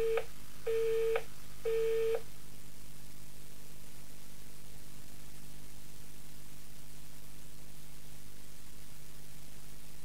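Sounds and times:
telephone busy tone beeps: 0:00.0 - 0:02.2
faint line hiss: 0:00.0 - 0:10.0.

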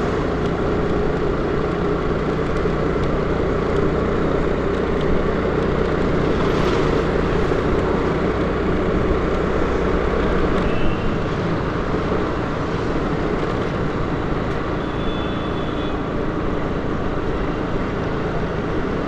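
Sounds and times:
road noise: 0:00.0 - 0:19.0.

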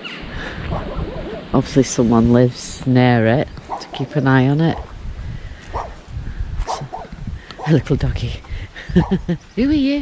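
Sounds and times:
small dog barking: 0:04.7 - 0:05.0, 0:05.7 - 0:06.0.

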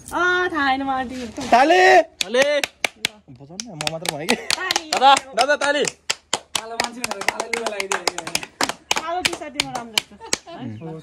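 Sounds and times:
hand clapping: 0:02.1 - 0:10.5.

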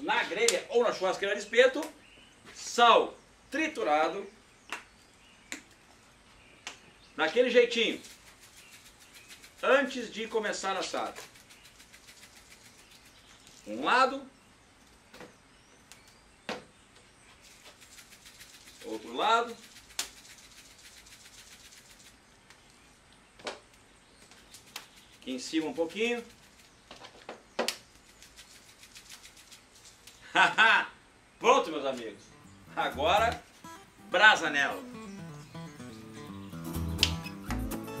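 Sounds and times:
salt shaking in jar: 0:07.4 - 0:13.8, 0:17.4 - 0:22.4, 0:24.2 - 0:27.0, 0:27.8 - 0:30.3.

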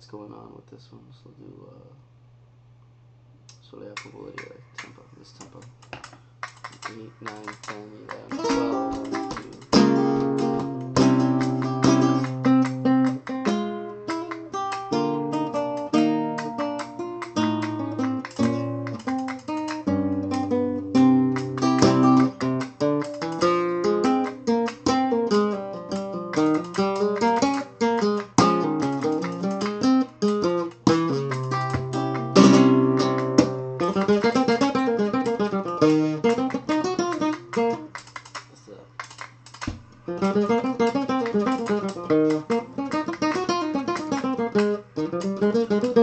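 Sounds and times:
flamenco guitar playing: 0:06.4 - 0:46.0.

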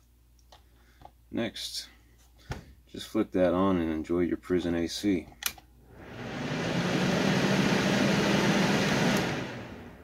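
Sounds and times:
electric fan air rush: 0:05.9 - 0:10.0
fan motor hum: 0:05.9 - 0:10.0.

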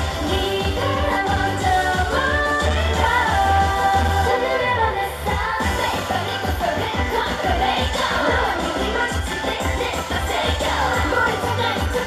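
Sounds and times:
pop backing track with bass: 0:00.0 - 0:12.0
women singing live: 0:00.0 - 0:12.0.

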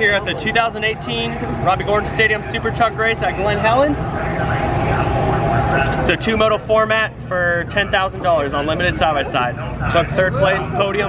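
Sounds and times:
race car engines droning: 0:00.0 - 0:11.0
track noise: 0:00.0 - 0:11.0.

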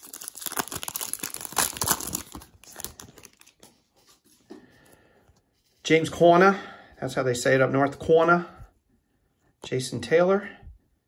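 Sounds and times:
wrapper crinkling and tearing: 0:00.0 - 0:03.7.

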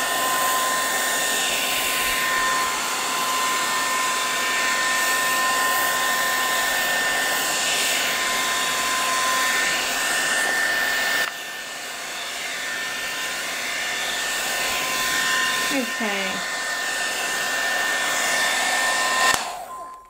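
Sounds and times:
heat tool fan rush with whine: 0:00.0 - 0:19.8.

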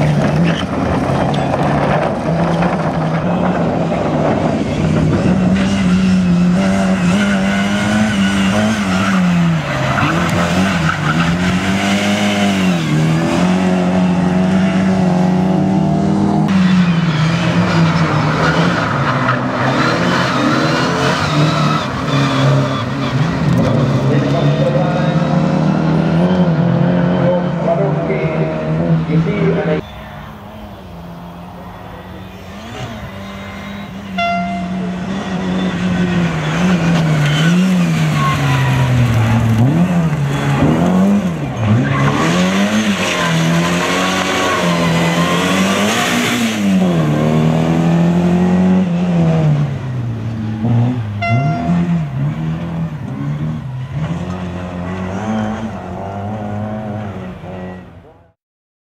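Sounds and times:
rally car engine revving: 0:00.0 - 0:58.4.

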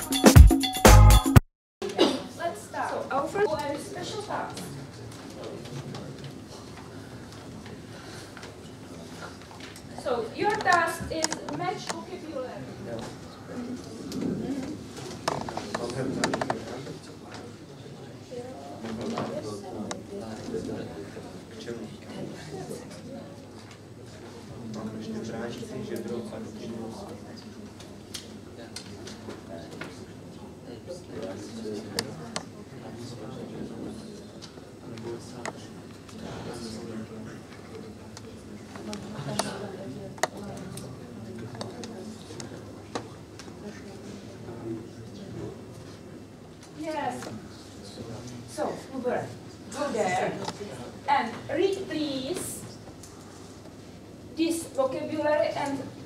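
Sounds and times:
low murmur of voices: 0:01.8 - 0:56.0.

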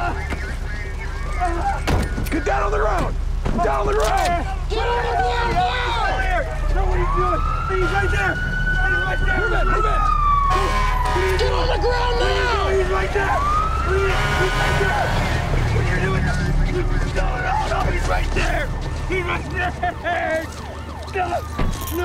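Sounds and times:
police siren wailing: 0:00.0 - 0:22.0.

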